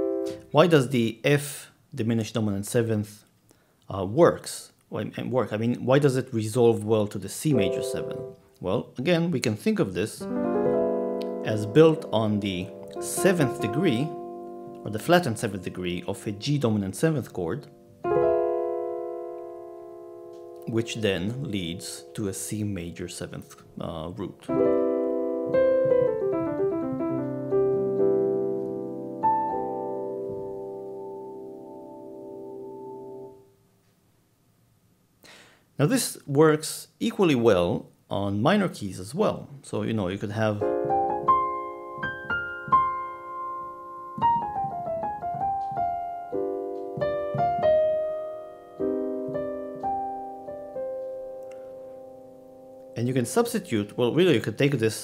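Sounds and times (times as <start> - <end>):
piano chord: 0.0 - 0.5, 7.5 - 8.4, 10.2 - 33.5, 40.6 - 54.3.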